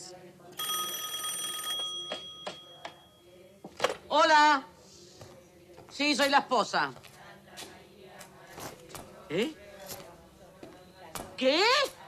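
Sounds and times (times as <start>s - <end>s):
telephone bell ringing: 0.6s - 3.3s.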